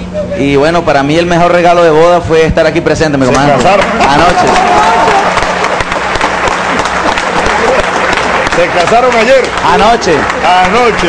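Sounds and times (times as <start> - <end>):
audience applauding: 3.6 - 11.0.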